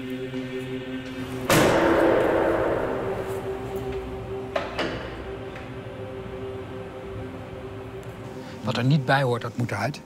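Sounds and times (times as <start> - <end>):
heavy cell door slamming: 1.4 - 5.4.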